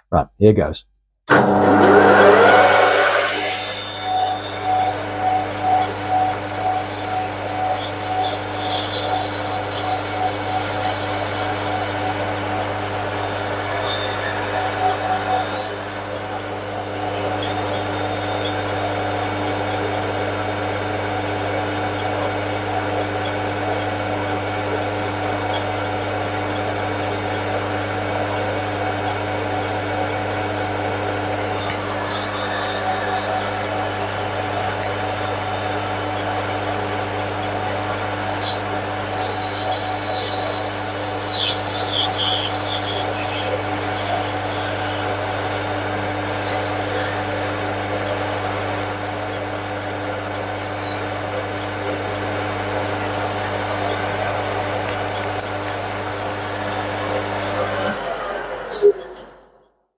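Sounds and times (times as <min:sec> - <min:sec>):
lathe motor hum: 0:26.0 - 0:48.7.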